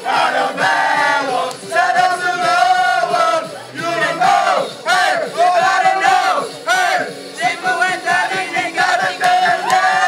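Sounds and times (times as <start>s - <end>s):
boys singing and shouting: 0.0s - 10.0s.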